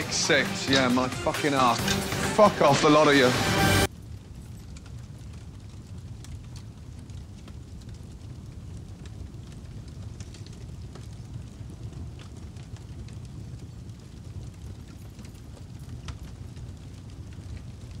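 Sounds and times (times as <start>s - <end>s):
fire rumbling and crackling: 0.0s - 18.0s.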